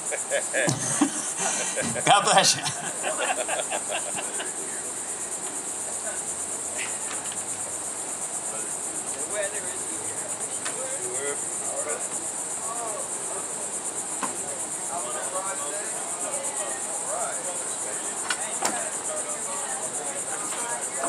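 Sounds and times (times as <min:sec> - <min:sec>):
insect chorus pulsing buzz: 0:00.0 - 0:21.0.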